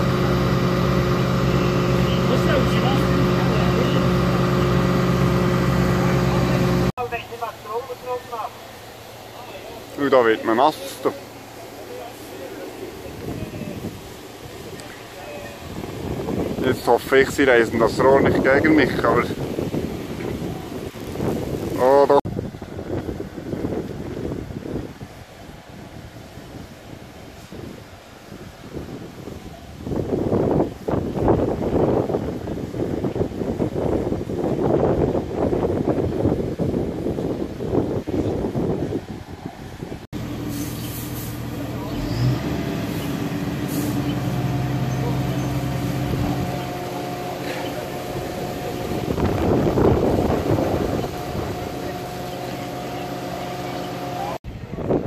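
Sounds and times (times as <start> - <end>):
fire truck engine running: 0.0 - 16.8, 37.0 - 55.0
voices: 0.0 - 19.5, 41.3 - 54.9
wind on microphone: 12.7 - 55.0.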